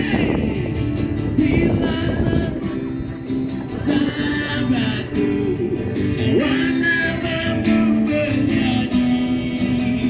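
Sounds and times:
person singing: 0.0s - 10.0s
strummed acoustic guitar: 0.0s - 10.0s.

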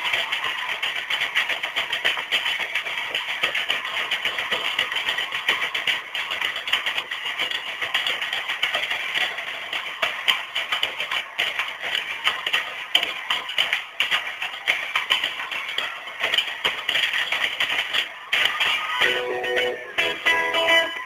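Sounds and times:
crowd noise: 0.0s - 21.0s
live concert music: 19.0s - 21.0s.

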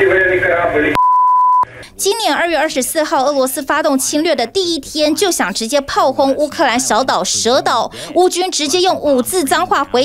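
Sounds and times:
censor bleep: 0.9s - 1.7s.

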